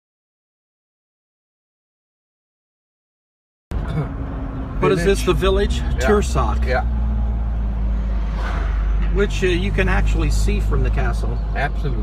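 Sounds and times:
engine and road rumble in car: 3.7 - 12.0
car swishing past: 5.3 - 11.3.

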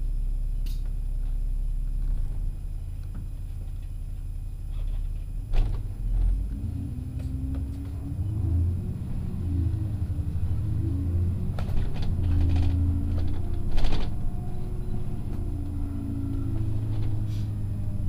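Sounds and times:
bus engine rumble: 0.0 - 18.0.

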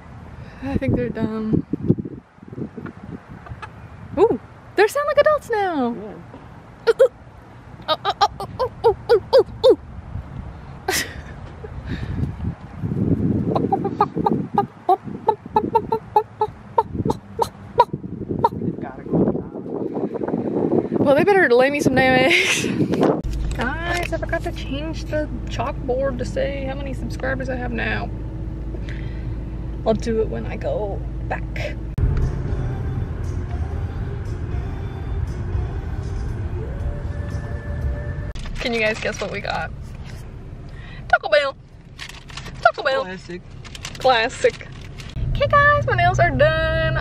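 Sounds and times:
car interior rumble: 0.0 - 47.0
hens clucking: 13.6 - 17.5
quiet music playing: 32.0 - 38.3.

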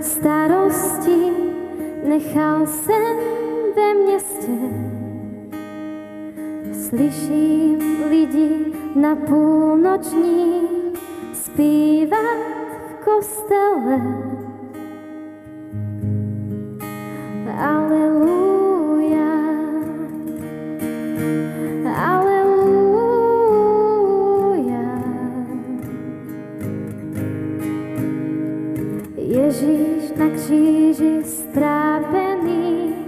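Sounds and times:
woman singing: 0.0 - 5.4, 6.6 - 14.8, 17.2 - 20.5, 21.3 - 26.3, 28.9 - 33.0
acoustic guitar chords: 0.0 - 33.0.

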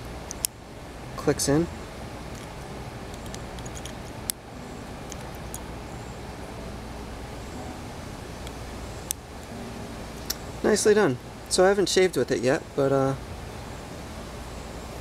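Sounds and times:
low outdoor background rumble: 0.0 - 15.0
handling ticks: 2.3 - 4.4, 5.0 - 5.7.

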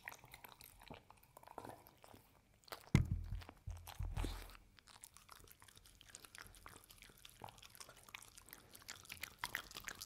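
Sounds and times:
dog licking and chewing: 0.0 - 10.0.

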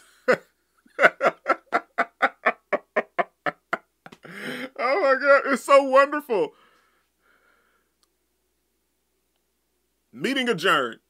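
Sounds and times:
man laughing hard: 0.0 - 5.0.

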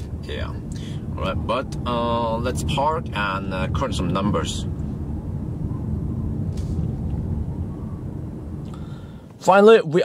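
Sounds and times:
road and tyre noise: 0.0 - 10.0.

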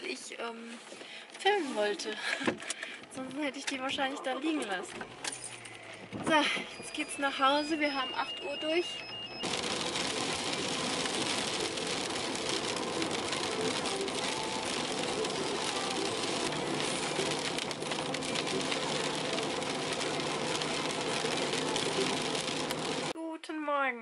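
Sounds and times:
rain on windscreen: 5.7 - 23.2
tyres hissing on wet asphalt: 9.4 - 23.1.

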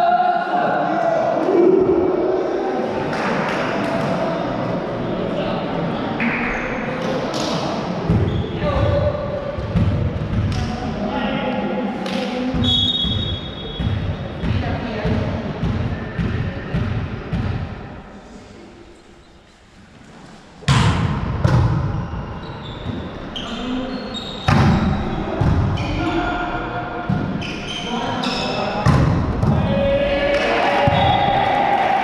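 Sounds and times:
ball bouncing on court floor: 20.7 - 21.9, 28.8 - 29.6.

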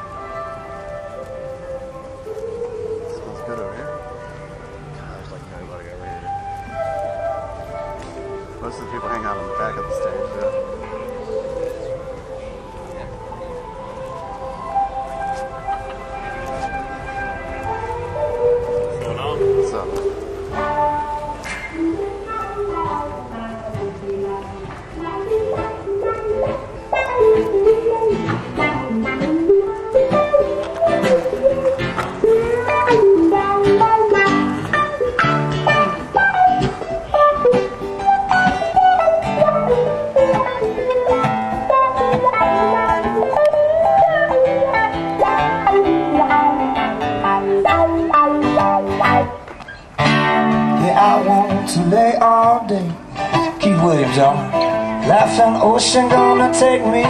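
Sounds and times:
acoustic guitar picking melody: 0.0 - 57.0.

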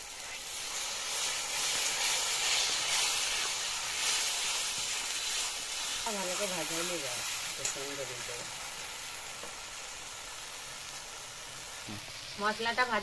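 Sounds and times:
spices sizzling in hot oil: 0.0 - 13.0.

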